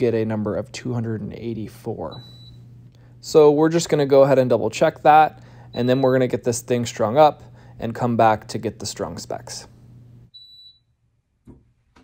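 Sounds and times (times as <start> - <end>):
electronic beep: 2.1 - 2.6, 5.7 - 6.2, 10.4 - 10.9.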